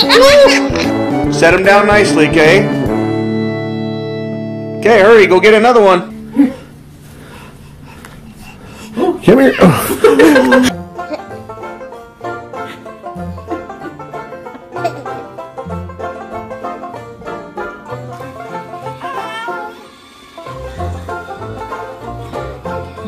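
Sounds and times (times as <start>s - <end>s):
bluegrass plucked-string music: 0.0s - 7.3s, 10.2s - 19.8s, 20.4s - 23.0s.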